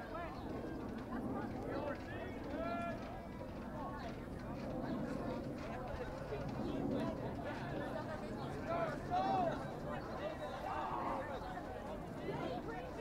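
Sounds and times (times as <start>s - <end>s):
people talking and calling out: 0.0s - 13.0s.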